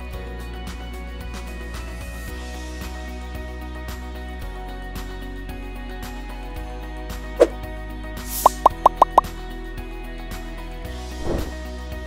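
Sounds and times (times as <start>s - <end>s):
background music: 0.0s - 12.0s
cartoon pop sound effects: 8.4s - 9.3s
brief whoosh: 11.2s - 11.6s.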